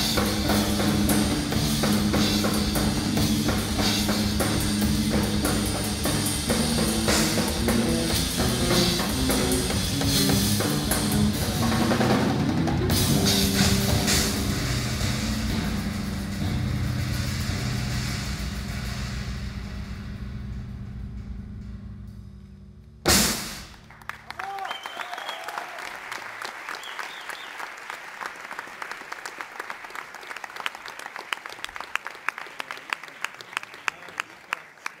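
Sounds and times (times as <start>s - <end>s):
loud drum hit: 0.0s - 24.0s
dense drumming: 0.0s - 24.2s
sustained low bass notes: 0.0s - 24.2s.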